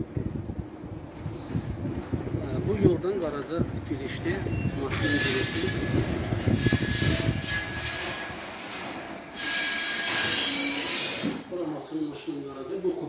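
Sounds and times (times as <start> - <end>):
garage door rolling up: 4.1 - 11.5
metallic squeal: 4.4 - 11.4.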